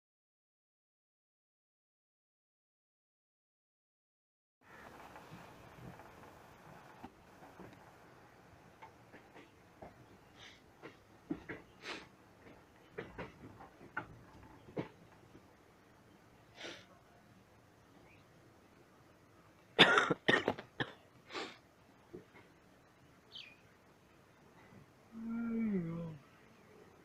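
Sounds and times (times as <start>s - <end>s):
person coughing: 19.8s - 21.0s.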